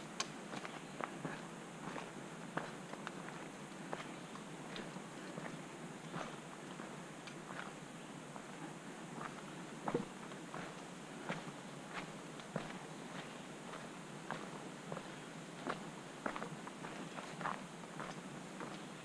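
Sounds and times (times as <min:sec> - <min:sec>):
footsteps on dirt trail: 0:00.5 - 0:07.8, 0:09.2 - 0:18.9.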